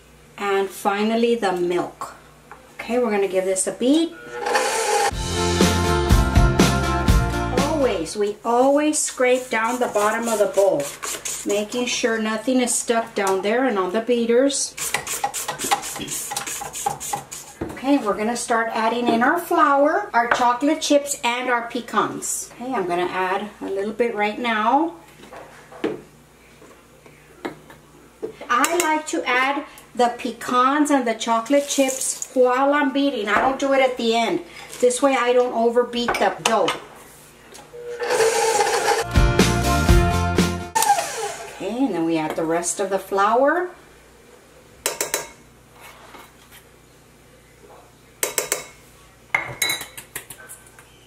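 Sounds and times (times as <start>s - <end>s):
spatula scraping mixer bowl: 4.2s - 5.2s, 8.6s - 12.0s, 14.6s - 18.1s, 37.8s - 39.1s, 40.8s - 42.0s
low bass line: 5.1s - 7.9s, 39.1s - 40.8s.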